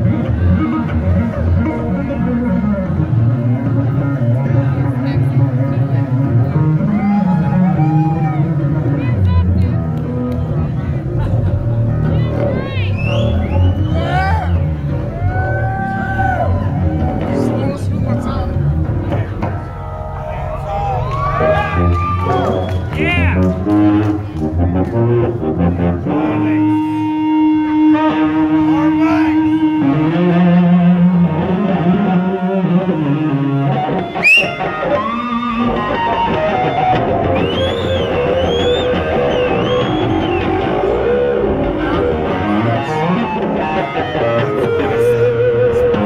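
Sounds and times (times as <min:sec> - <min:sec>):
electric bass guitar fast notes: 0:00.0 - 0:46.0.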